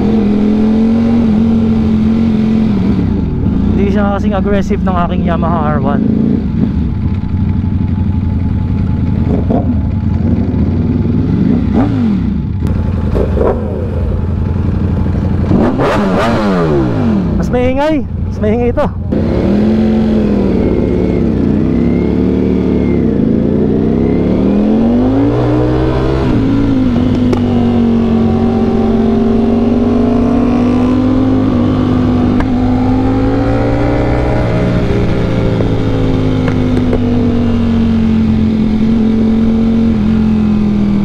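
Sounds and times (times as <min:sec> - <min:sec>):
motorcycle engine revving and shifting: 0:00.0 - 0:17.8, 0:19.0 - 0:41.0.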